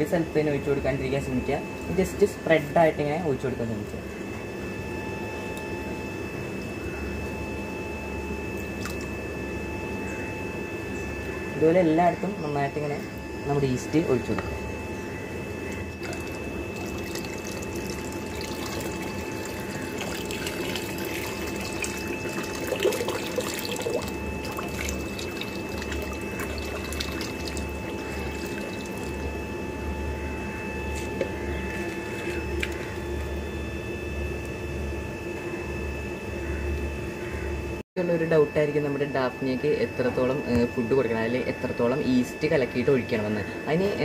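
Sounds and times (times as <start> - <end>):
faint steady hum: 0.0 - 44.0
liquid pouring into water: 16.0 - 29.3, 31.2 - 33.2.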